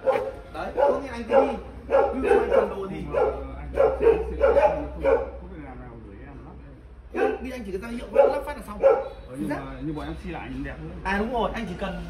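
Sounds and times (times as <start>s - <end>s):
dog barking: 0.0s - 5.4s, 7.1s - 9.2s.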